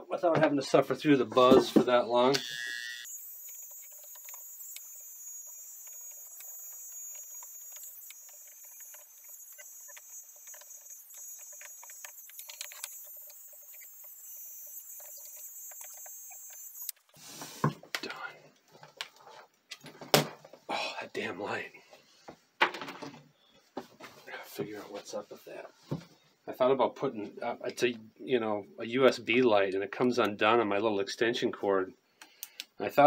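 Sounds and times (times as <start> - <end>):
demagnetizer buzzing: 2.0 - 17.0.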